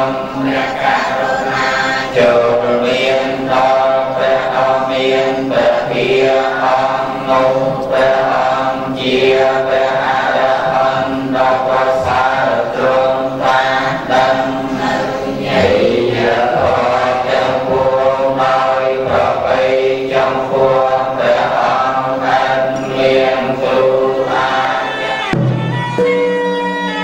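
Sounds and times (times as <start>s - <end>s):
group chanting in unison: 0.0s - 25.4s.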